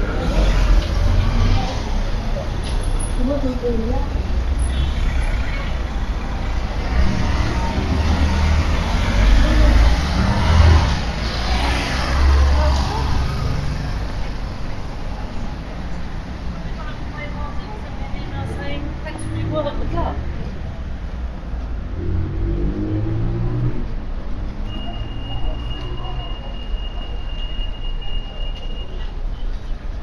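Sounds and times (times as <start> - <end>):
indistinct voices of passers-by: 0.0 - 30.0
road traffic rumble: 0.0 - 30.0.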